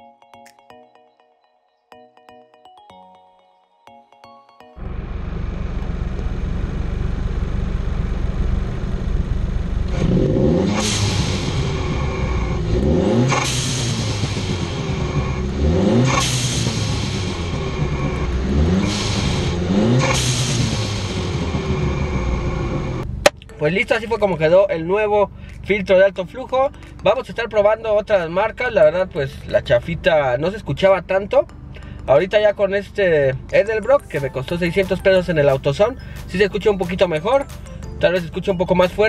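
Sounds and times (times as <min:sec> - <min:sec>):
car engine revving: 0:04.8 - 0:23.2
car engine idling: 0:04.8 - 0:31.1.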